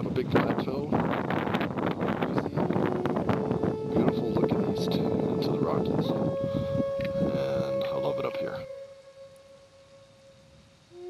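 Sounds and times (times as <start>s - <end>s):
wind buffeting microphone: 0.0s - 8.9s
held musical note: 2.2s - 11.0s.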